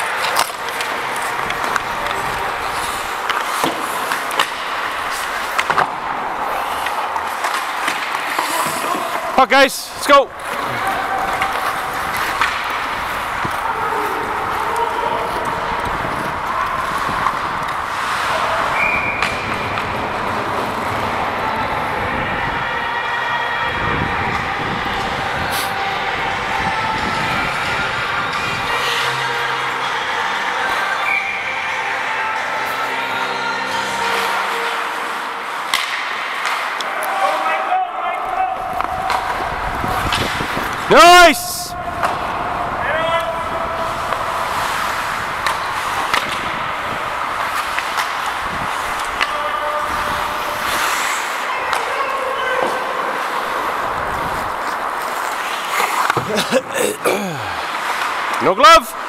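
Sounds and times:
skates sticks and puck on ice: 0.0s - 59.0s.

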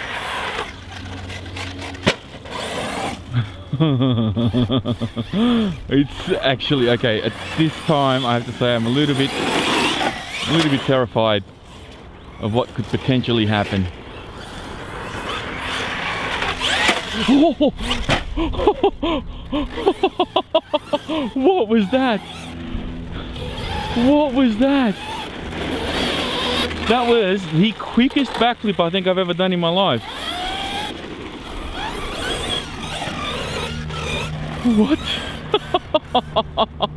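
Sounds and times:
rc buggy running on dirt: 0.0s - 36.9s
toy car striking the ground: 0.1s - 3.2s, 14.4s - 18.4s, 24.9s - 28.4s, 30.0s - 34.6s
man laughing loudly: 3.3s - 5.9s, 17.1s - 21.8s, 34.7s - 36.9s.

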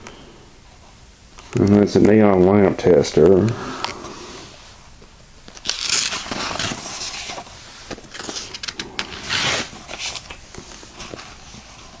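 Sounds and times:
paper pages turning: 5.5s - 12.0s.

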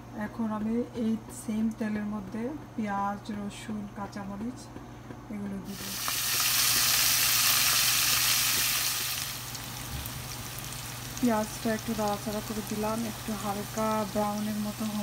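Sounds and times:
onions sizzling in hot oil: 5.7s - 15.0s.

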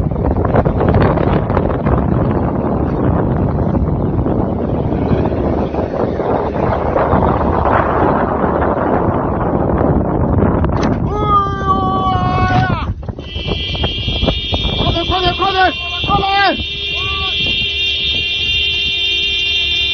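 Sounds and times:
wind buffeting microphone: 0.0s - 19.9s.

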